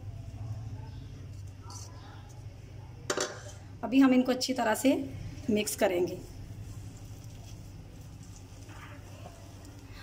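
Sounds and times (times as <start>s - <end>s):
low steady hum: 0.0s - 10.0s
hand squishing food in bowl: 6.4s - 10.0s.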